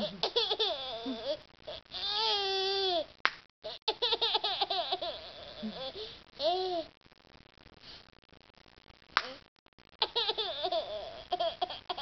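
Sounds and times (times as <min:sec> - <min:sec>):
toddler laughing: 0:00.1 - 0:01.4, 0:03.9 - 0:05.8, 0:10.0 - 0:12.0.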